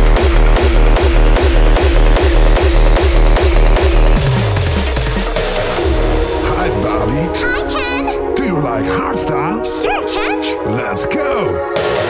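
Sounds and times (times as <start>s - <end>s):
heavy kick drum: 0.0s - 7.3s
hardstyle dance music: 0.0s - 12.0s.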